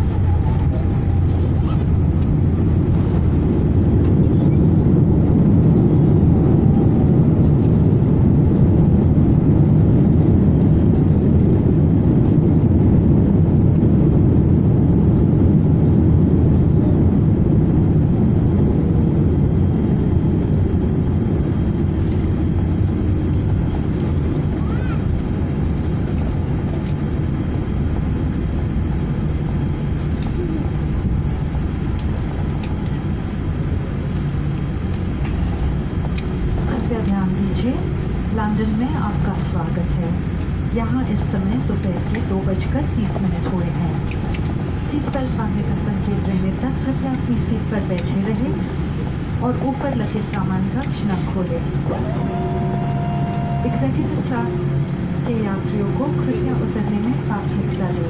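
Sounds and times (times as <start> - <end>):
airflow: 0.0 - 58.0
jet engines rumbling: 0.0 - 58.0.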